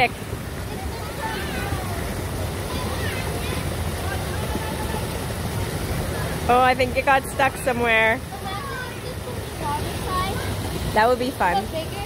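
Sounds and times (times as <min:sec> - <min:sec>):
faint voices: 0:00.0 - 0:07.1
water rushing down a channel: 0:00.0 - 0:12.0
water splashing through metal grate: 0:00.0 - 0:12.0.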